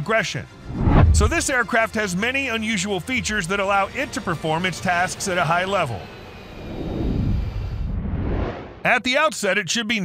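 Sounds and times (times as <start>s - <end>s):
jet engine roar: 0.6s - 1.6s, 4.3s - 8.8s.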